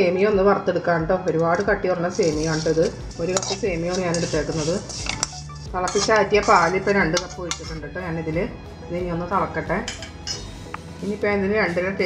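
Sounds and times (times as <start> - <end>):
background music: 0.0 - 12.0
utensil clinking on metal pan: 2.4 - 7.8, 9.8 - 10.5.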